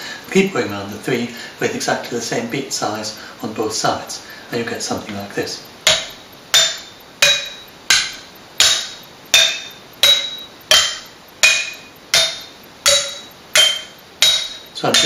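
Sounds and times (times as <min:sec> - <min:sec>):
glass jars struck with sticks: 0:05.9 - 0:15.0.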